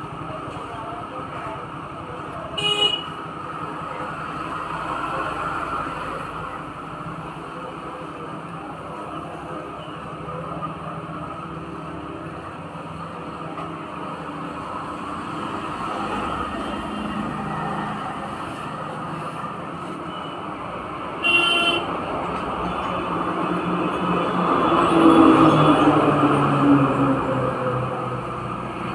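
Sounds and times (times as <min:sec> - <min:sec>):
road traffic noise: 0:00.0 - 0:28.9
vehicle horn toot: 0:21.2 - 0:21.9.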